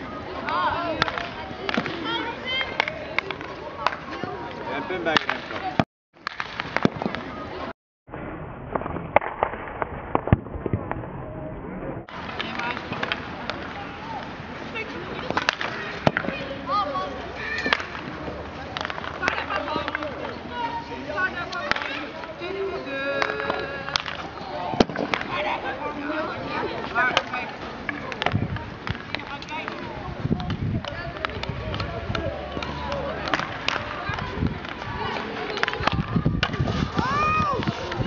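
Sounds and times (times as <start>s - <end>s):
children's voices: 0.0s - 4.7s, 13.6s - 38.0s
hockey sticks striking balls: 0.2s - 7.7s, 8.6s - 11.0s, 12.1s - 38.0s.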